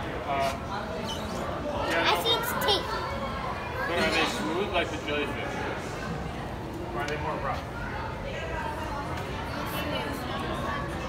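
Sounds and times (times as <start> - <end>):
visitors chattering: 0.0 - 11.0
children's voices calling out: 1.7 - 4.1.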